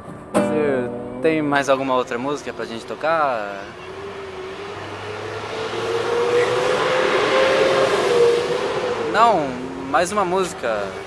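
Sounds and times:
vehicle engine approaching: 1.6 - 11.0.

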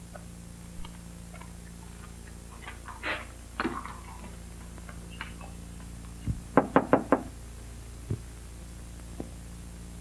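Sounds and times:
low hum: 0.0 - 6.6
knocking on a door: 6.5 - 7.3.

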